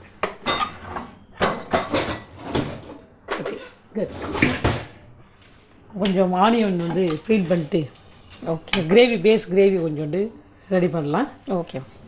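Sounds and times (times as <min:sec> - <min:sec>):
pots and pans clattering: 0:00.2 - 0:05.0.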